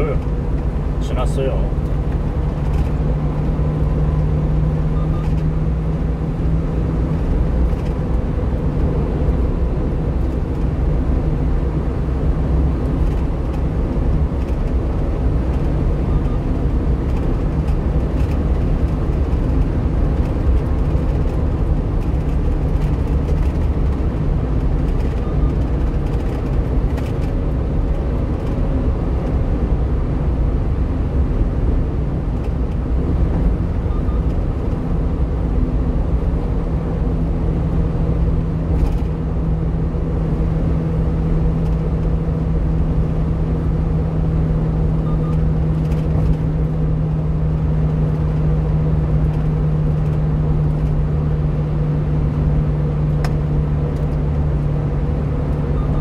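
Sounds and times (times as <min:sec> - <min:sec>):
truck engine and tyre rumble: 0:00.0 - 0:56.0.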